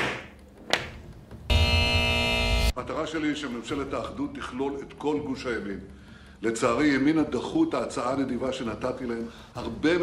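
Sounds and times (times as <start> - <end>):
electronic buzzer: 1.5 - 2.8.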